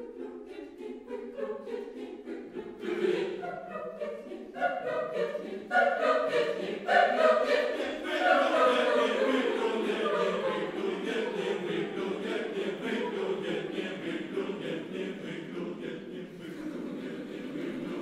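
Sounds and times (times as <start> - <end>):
choir singing a cappella: 0.0 - 18.0.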